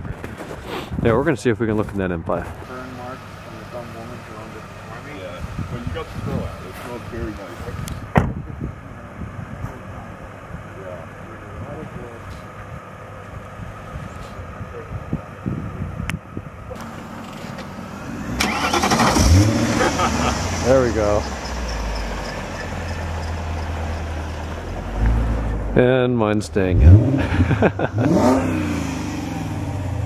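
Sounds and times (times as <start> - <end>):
car engine idling: 2.6 - 30.0.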